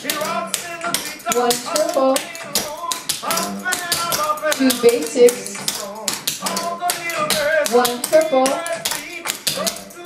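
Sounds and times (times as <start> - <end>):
song with singing: 0.0 - 10.0.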